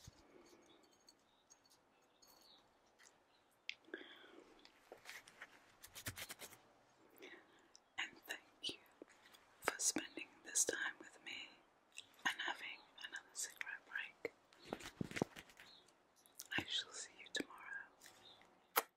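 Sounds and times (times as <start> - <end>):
woman whispering: 8.0 - 9.0, 9.6 - 14.4, 16.4 - 18.0.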